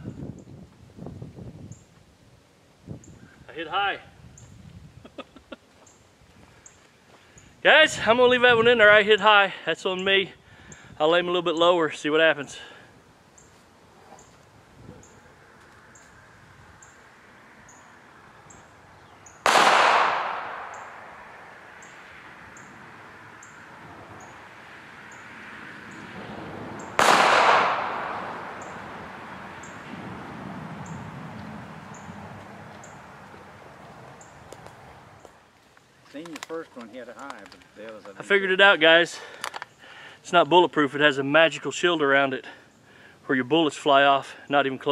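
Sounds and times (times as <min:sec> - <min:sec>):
pistol shots with echo: 0:19.4 - 0:21.2, 0:26.8 - 0:29.0.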